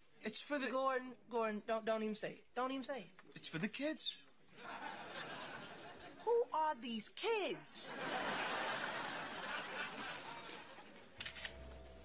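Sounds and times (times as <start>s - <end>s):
camera shutter clicking: 11.2s - 11.7s.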